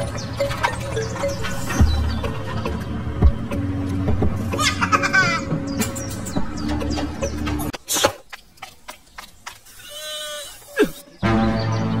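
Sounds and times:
background music with low beat: 0.0 - 7.8.

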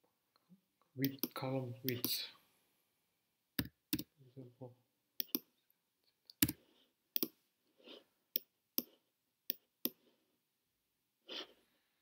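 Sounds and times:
mouse and keyboard clicks: 5.2 - 5.5, 7.2 - 7.4.

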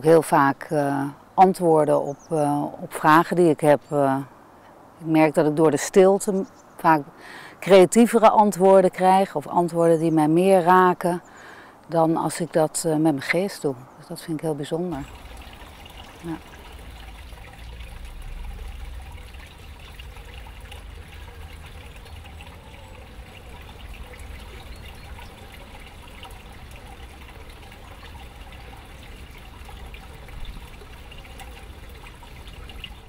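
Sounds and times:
fountain water trickling: 0.0 - 4.3, 5.1 - 33.0.

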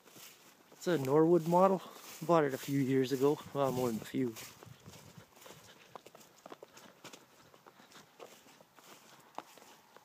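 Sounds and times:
footsteps crunching on dry grass: 0.0 - 10.0.

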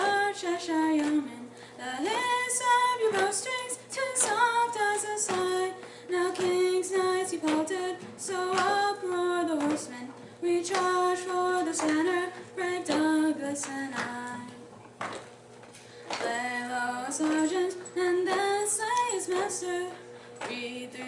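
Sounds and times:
woman singing unaccompanied: 0.0 - 14.7, 16.2 - 21.0.

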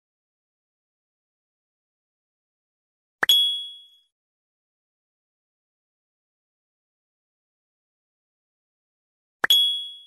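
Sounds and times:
ding with bell-like tone: 3.3 - 4.1, 9.5 - 10.0.

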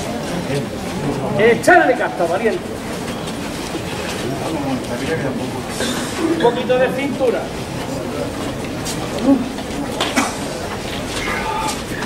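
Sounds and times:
low crowd voices: 0.0 - 12.0.

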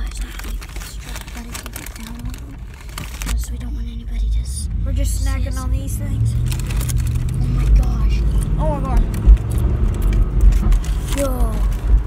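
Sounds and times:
snack wrapper crinkling: 0.0 - 3.6, 6.4 - 11.9
truck rumbling: 0.0 - 12.0.

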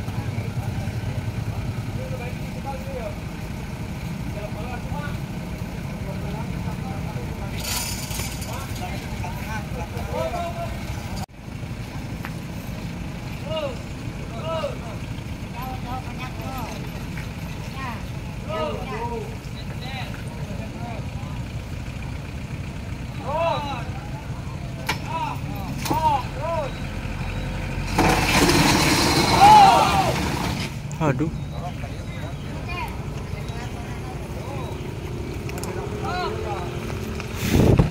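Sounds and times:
onlookers talking: 0.0 - 37.9
tow truck engine running: 0.0 - 37.9
raised voices: 17.7 - 21.1, 29.1 - 37.4.

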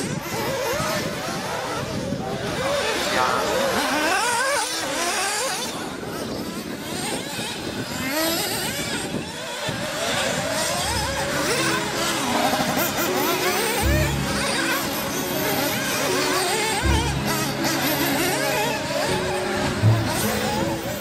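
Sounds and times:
rc buggy engines revving: 0.0 - 21.0
music with bass line: 10.8 - 21.0.

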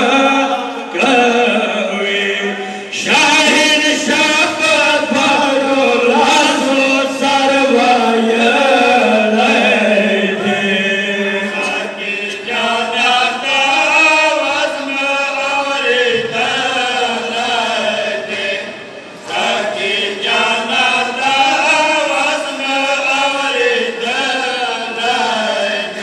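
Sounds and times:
men chanting through loudspeakers: 0.0 - 26.0.

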